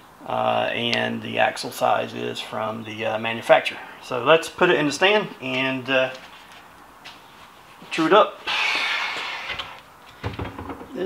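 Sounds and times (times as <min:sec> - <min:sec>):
wheel scraping slide: 0:08.5 - 0:09.8
light knocks and clunks: 0:10.1 - 0:11.0.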